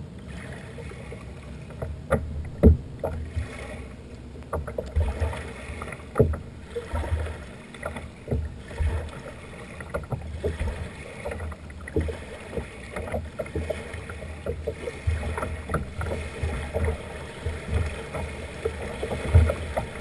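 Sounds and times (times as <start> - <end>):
waves lapping against kayak hull: 0.0 - 20.0.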